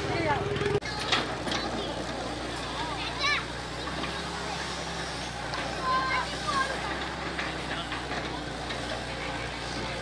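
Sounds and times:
crowd chatter: 0:00.0 - 0:10.0
excavator diesel engine running: 0:00.0 - 0:10.0.

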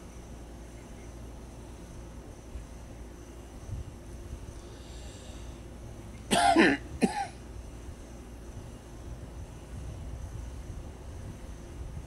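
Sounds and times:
person coughing: 0:06.3 - 0:07.4.

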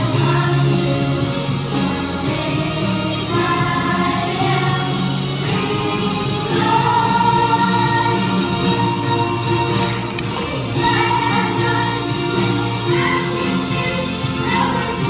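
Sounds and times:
children's choir singing: 0:00.0 - 0:09.4, 0:10.6 - 0:15.0
musical accompaniment: 0:00.0 - 0:15.0.

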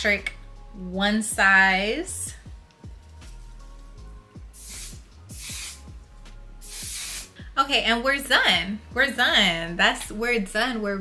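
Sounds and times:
background music with a beat: 0:00.1 - 0:10.2
aerosol spray hisses: 0:04.5 - 0:05.9, 0:06.6 - 0:07.4.

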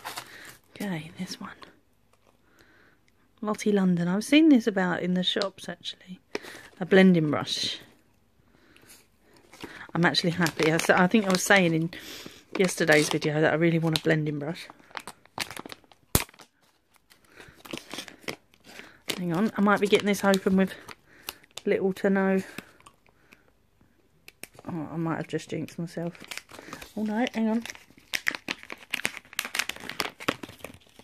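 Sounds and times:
plastic packaging crinkling: 0:00.0 - 0:02.4, 0:09.3 - 0:23.0, 0:25.9 - 0:31.0
plastic packaging click: 0:14.9 - 0:16.5.

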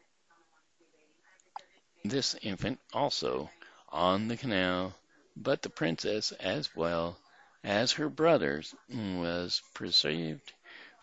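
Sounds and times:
faint whispering voice: 0:00.0 - 0:07.8, 0:08.5 - 0:11.0.

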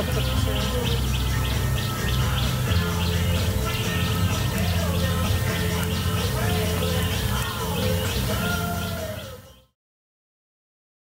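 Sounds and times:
birds chirping: 0:00.0 - 0:09.7.

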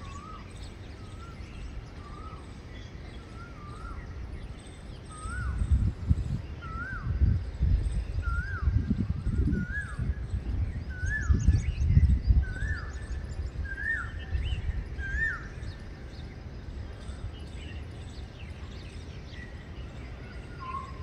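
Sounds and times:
bird whistled call: 0:00.0 - 0:16.3, 0:16.9 - 0:21.0
faint bird chirps: 0:00.0 - 0:21.0.

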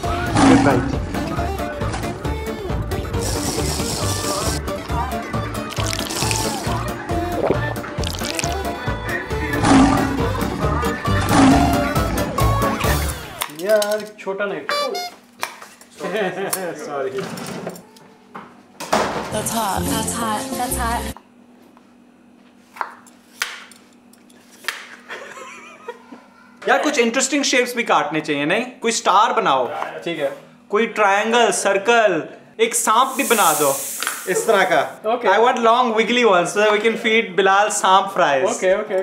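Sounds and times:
men talking: 0:16.0 - 0:17.3, 0:29.1 - 0:39.0
high even hiss: 0:32.8 - 0:35.0
person talking or laughing: 0:34.3 - 0:34.8.

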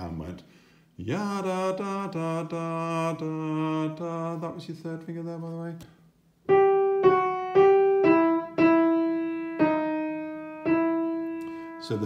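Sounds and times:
slow piano melody: 0:06.4 - 0:12.0.

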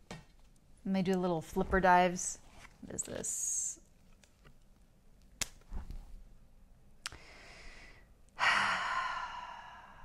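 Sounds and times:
woman sighing: 0:08.4 - 0:10.0.

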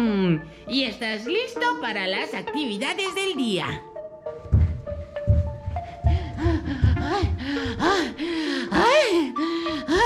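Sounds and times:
man panting heavily: 0:05.7 - 0:08.7.

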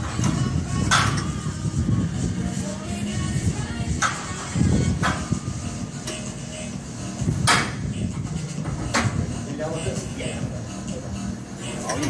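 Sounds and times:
background music: 0:00.0 - 0:12.0
voices: 0:09.4 - 0:12.0.

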